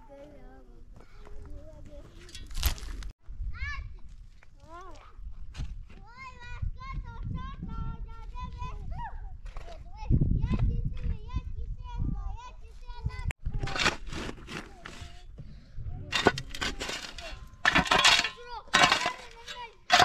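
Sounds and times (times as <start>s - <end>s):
shovel scraping stony soil: 13.5s - 15.4s, 16.1s - 20.0s.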